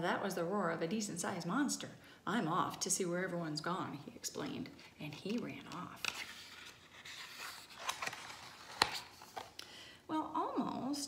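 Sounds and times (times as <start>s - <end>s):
book page turning: 4.8s - 9.6s.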